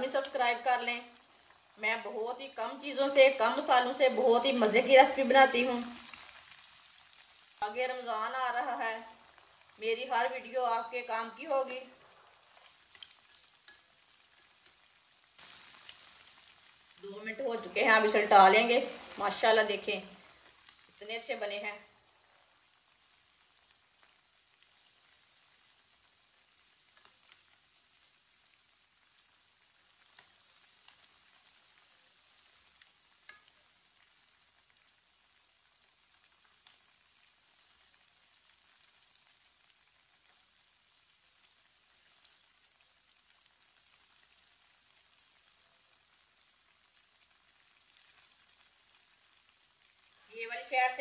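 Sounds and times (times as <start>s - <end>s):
food sizzling in oil: 0.0s - 51.0s
spoon clicking in a pan: 33.2s - 33.6s.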